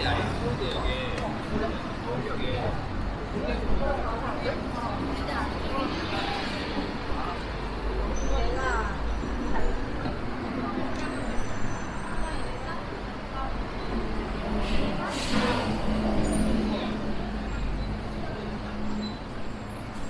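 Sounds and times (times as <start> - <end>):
street traffic rumble: 0.0 - 20.0
burst of hiss: 14.6 - 15.8.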